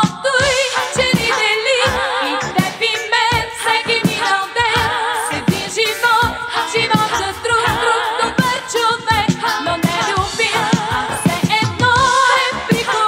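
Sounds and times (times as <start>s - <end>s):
drums keeping a steady beat: 0.0s - 13.0s
pop song with vibrato melody: 0.0s - 13.0s.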